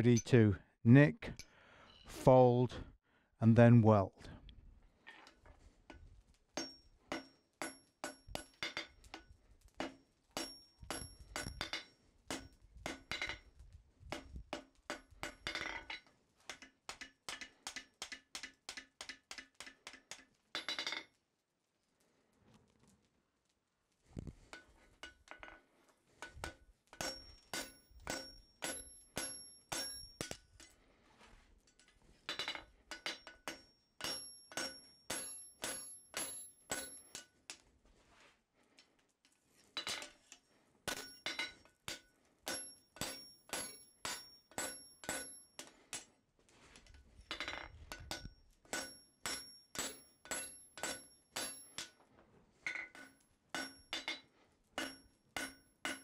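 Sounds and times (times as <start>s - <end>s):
hammer striking steel on anvil: 6.6s - 9.2s, 9.8s - 13.4s, 14.1s - 21.1s, 26.2s - 30.4s, 32.3s - 37.4s, 40.9s - 46.1s, 47.3s - 52.0s, 52.6s - 56.0s
anvil ringing: 10.4s - 13.4s, 27.0s - 30.4s, 32.3s - 37.3s, 40.9s - 45.7s, 47.4s - 51.9s, 52.7s - 54.2s, 54.8s - 56.0s.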